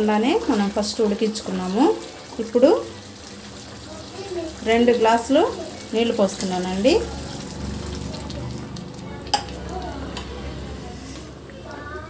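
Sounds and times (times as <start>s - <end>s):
water pouring: 0.0s - 11.6s
curry sizzling in a pan: 0.0s - 12.0s.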